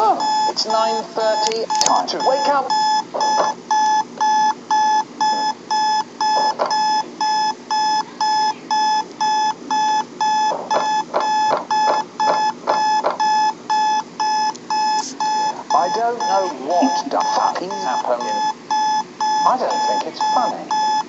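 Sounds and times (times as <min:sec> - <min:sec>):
alarm clock beeping: 0:00.0 - 0:21.0.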